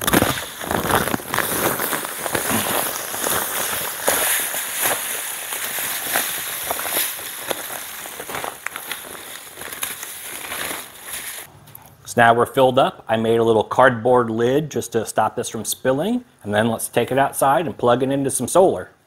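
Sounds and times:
plastic bag crinkling: 0.0s - 11.5s
sand pouring into metal pot: 0.0s - 11.5s.

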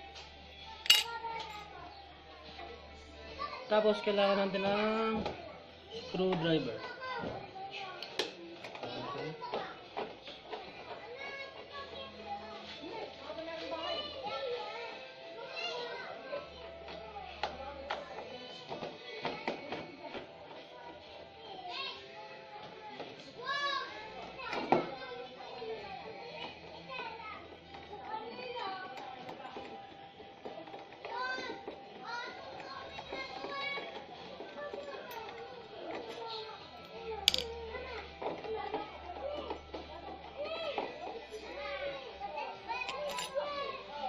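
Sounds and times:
background music: 0.0s - 44.0s
distant voices of children playing: 0.0s - 44.0s.

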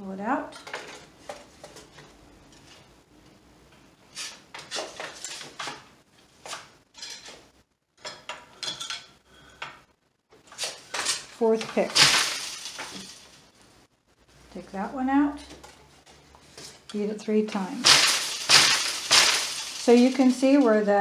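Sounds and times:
loom wooden clacks and rattles: 0.5s - 2.0s, 4.2s - 5.9s, 10.6s - 13.4s, 16.6s - 21.0s.

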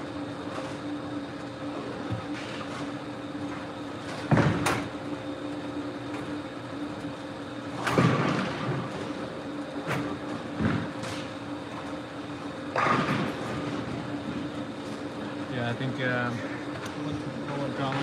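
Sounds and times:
steady hum: 0.0s - 18.0s
bowling balls striking pins: 12.7s - 13.8s.

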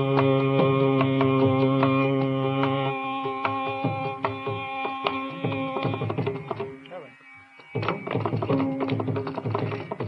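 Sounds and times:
mridangam strokes: 0.0s - 6.9s, 7.6s - 10.0s
sustained melodic line: 4.9s - 9.2s.

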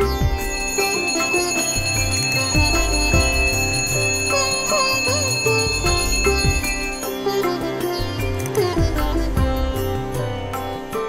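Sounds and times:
hand bell ringing: 0.0s - 7.2s
instrumental background music: 0.0s - 11.0s.

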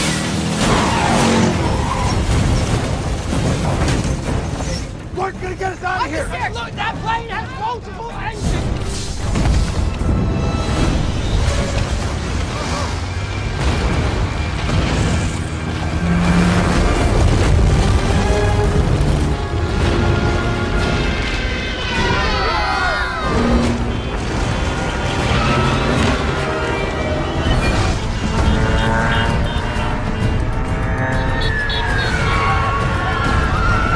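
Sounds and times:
dramatic film music: 0.0s - 33.9s
low rumble of destruction: 0.6s - 28.5s.

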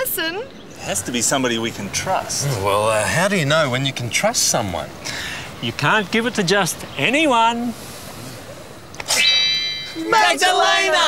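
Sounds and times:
high-pitched electronic tone: 9.1s - 10.9s.

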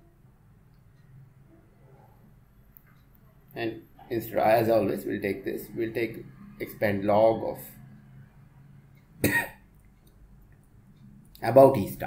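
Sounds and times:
person coughing: 9.2s - 9.6s.

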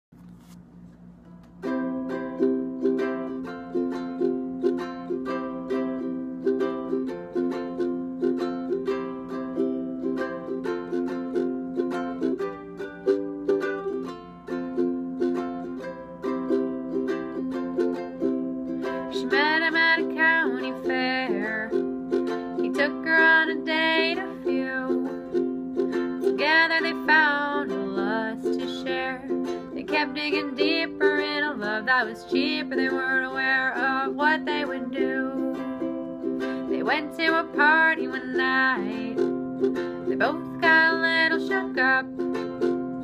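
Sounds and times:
ukulele strumming: 0.2s - 43.0s
person singing: 18.2s - 43.0s.

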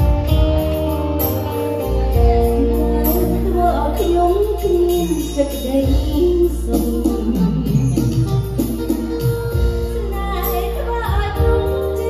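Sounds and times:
live band playing waltz: 0.0s - 12.0s
woman singing: 2.1s - 8.6s, 9.8s - 12.0s.

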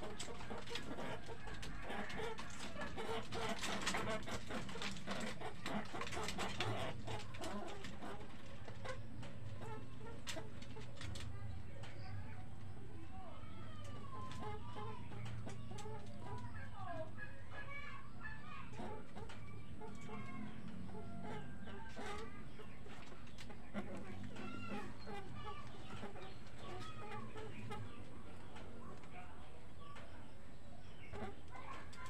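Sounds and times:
fowl clucking: 0.0s - 10.8s, 14.2s - 29.0s.

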